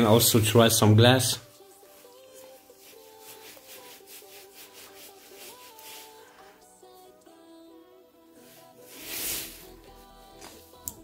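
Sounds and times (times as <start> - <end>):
paintbrush stroking on glass: 1.5 - 6.5.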